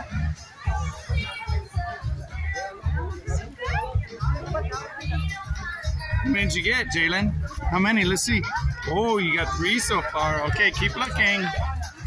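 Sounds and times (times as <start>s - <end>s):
background music with bass beat: 0.0s - 12.0s
children chattering and calling out: 0.0s - 12.0s.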